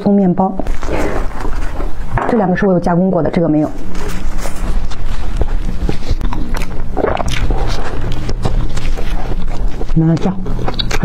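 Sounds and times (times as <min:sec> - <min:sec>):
bread tearing and squishing: 0:03.9 - 0:11.0.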